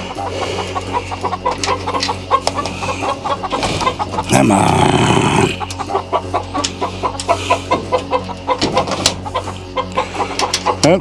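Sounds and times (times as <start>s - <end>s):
chickens clucking and cackling: 0.0s - 11.0s.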